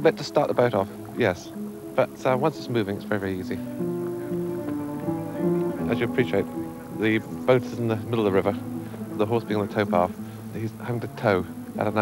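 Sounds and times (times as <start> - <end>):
guitar slow melody: 0.0 - 12.0.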